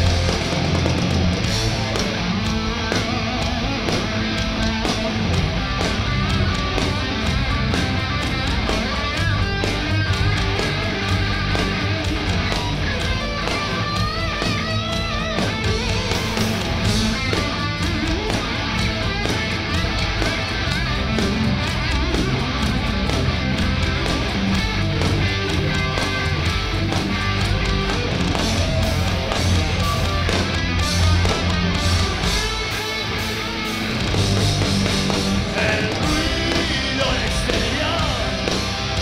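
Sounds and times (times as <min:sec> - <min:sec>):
punk rock band playing: 0:00.0 - 0:39.0.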